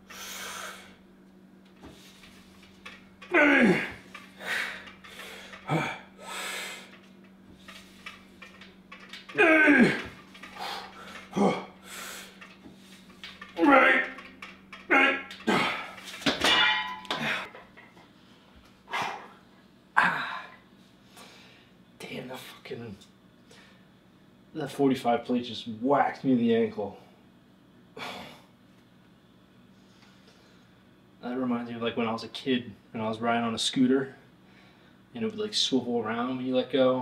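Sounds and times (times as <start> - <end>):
man breathing: 0.0 - 1.0, 3.8 - 7.0, 10.4 - 12.5
man grunting with effort: 3.3 - 4.8, 5.6 - 6.1, 9.3 - 11.8, 13.6 - 14.2, 14.9 - 16.0, 20.0 - 20.6.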